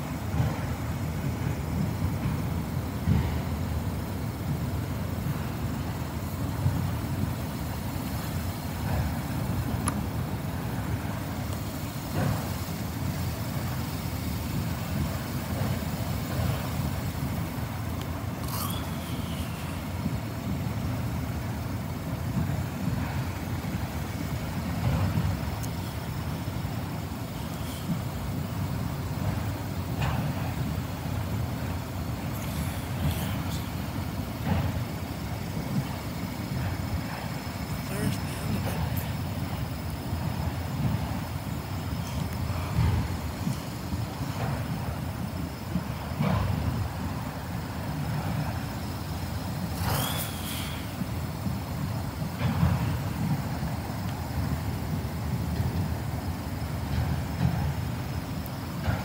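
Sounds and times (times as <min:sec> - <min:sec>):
train cars clanking: 0:00.0 - 0:59.0
train wheels rumbling on rails: 0:00.0 - 0:59.0
high wheel squeal: 0:49.7 - 0:51.0.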